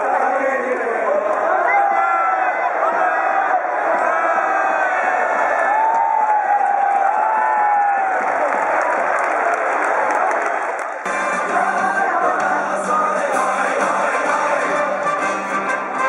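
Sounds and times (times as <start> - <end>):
stadium crowd cheering: 0.0 - 16.0.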